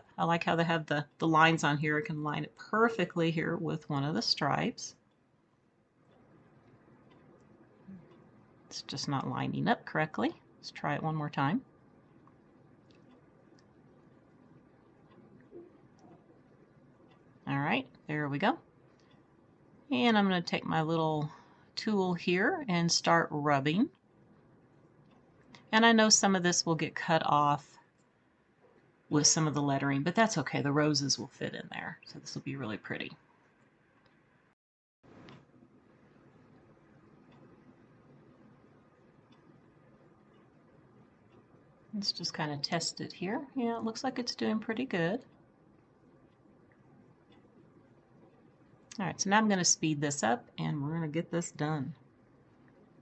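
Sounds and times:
faint ticks: 6.0 - 8.4, 12.0 - 18.1, 18.8 - 19.6, 35.1 - 42.0.

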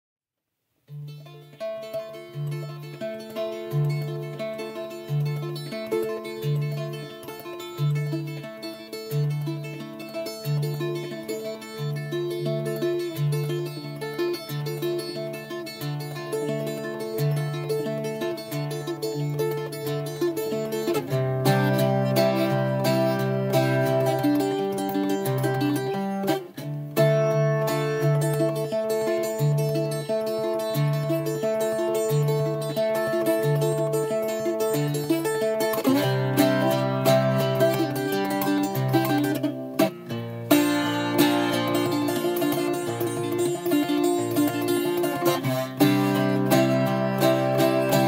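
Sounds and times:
bouzouki playing a tune: 0.9 - 48.0.

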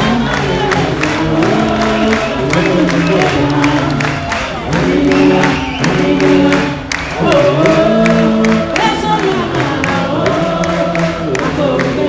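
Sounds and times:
steady drumbeat: 0.0 - 12.0.

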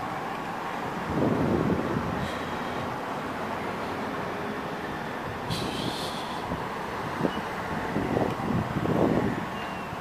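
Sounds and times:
road traffic rumble: 0.0 - 10.0.

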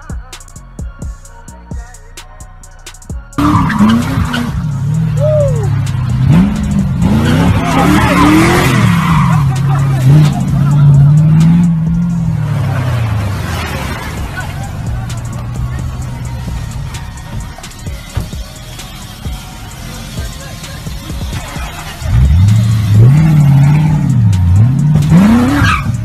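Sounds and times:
music with drum beat: 0.0 - 12.4, 14.1 - 26.0
tyre squeal: 3.4 - 5.8, 7.2 - 11.1, 21.3 - 26.0
car engine revving hard: 3.4 - 17.6, 19.8 - 26.0.

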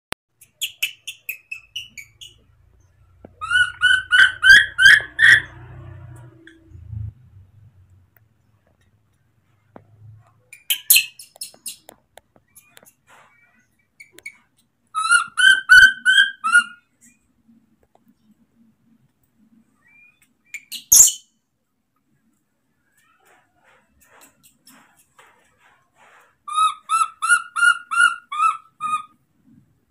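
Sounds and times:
baby monkey piping calls: 0.4 - 2.5, 3.4 - 5.5, 10.5 - 11.9, 15.0 - 16.8, 26.5 - 29.2.

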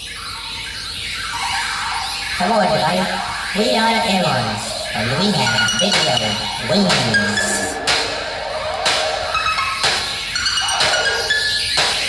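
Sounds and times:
synthesized noise sweep: 0.2 - 12.0.

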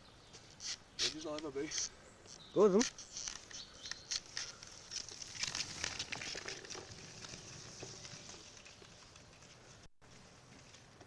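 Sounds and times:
skateboard wheels rolling on dirt: 0.0 - 11.0.

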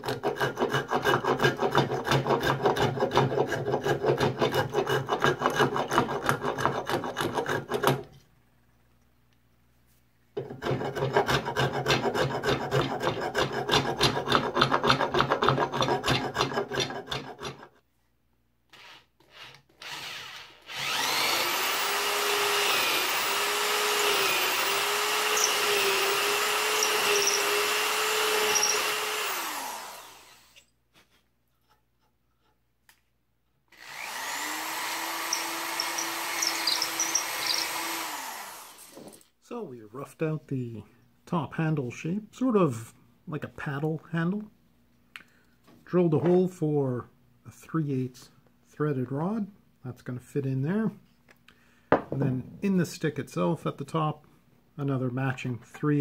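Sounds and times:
cordless drill whining: 18.7 - 30.7, 33.7 - 39.3.

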